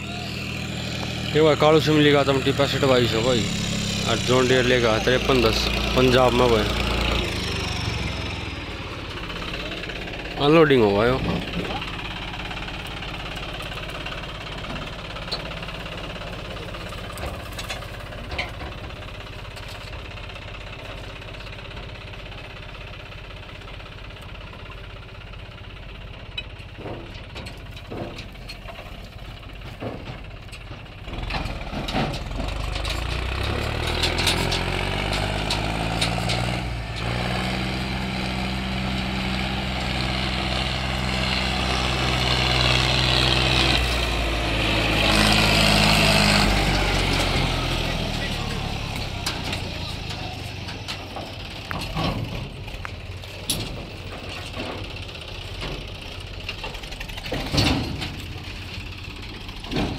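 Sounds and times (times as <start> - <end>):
diesel tractor engine: 0.0 - 59.9.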